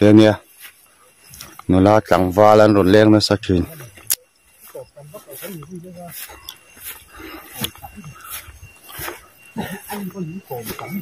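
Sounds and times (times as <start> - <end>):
footsteps on dirt path: 0.0 - 11.0
low voices: 1.2 - 11.0.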